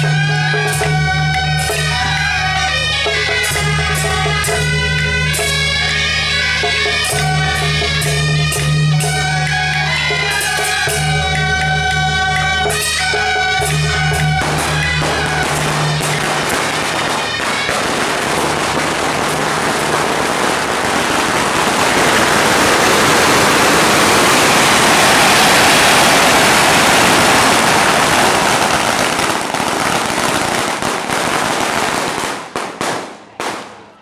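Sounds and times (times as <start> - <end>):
firecrackers crackling: 0.0 - 34.0.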